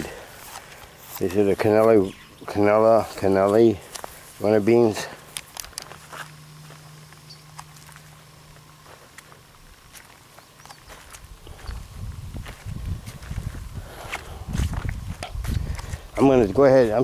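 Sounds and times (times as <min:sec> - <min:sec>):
footsteps: 0:00.0 - 0:17.0
low rumbling on microphone: 0:11.2 - 0:16.7.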